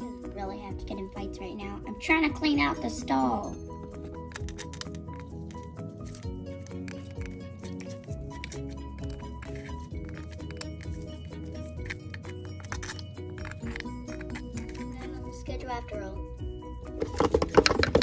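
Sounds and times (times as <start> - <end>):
background music with light percussion: 0.0 - 18.0.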